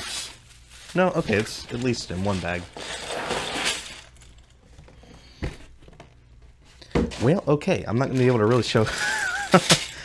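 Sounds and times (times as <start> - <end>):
plastic bag crinkling: 0.0 - 4.8, 8.2 - 10.0
plastic pieces rattling in a bag: 8.6 - 10.0.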